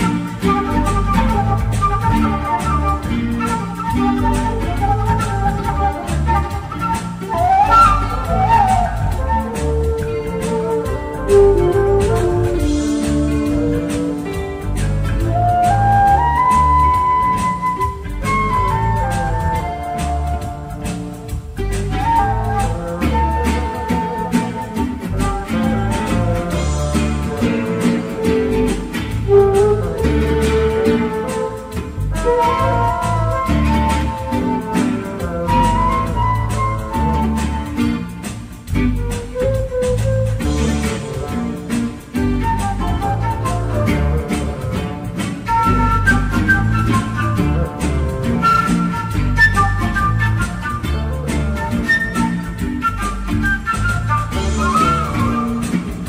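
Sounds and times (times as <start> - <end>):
bass guitar: 0.0 - 56.0
drum machine beat: 0.0 - 56.0
flute melody: 0.0 - 56.0
live band music: 0.0 - 56.0.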